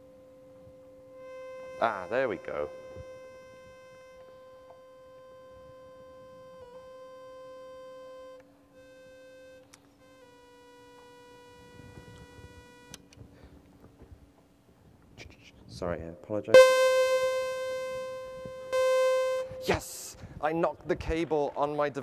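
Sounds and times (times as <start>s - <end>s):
synthesizer steady tone: 16.6s - 19.9s.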